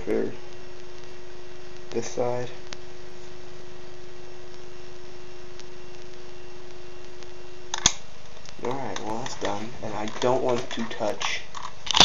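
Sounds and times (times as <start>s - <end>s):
soldering gun hum: 0.0s - 12.0s.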